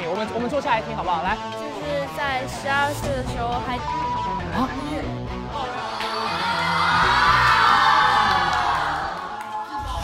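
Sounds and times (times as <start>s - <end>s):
background music: 0.0s - 10.0s
crowd shrieking and cheering: 5.5s - 10.0s.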